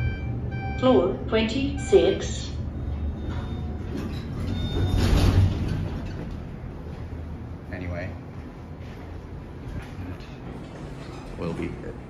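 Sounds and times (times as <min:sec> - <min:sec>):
elevator car arriving: 0:00.0 - 0:12.0
elevator doors sliding open: 0:01.8 - 0:07.4, 0:09.8 - 0:11.8.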